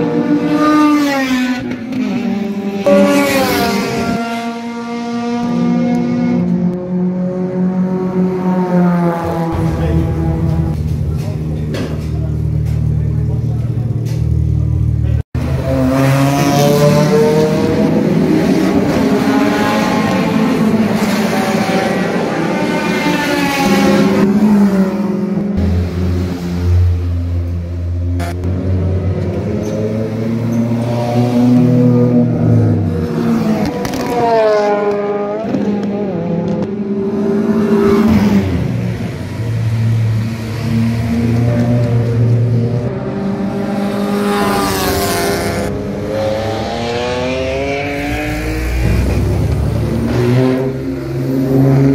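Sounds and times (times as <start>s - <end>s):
race car engines idling and revving: 0.0s - 51.9s.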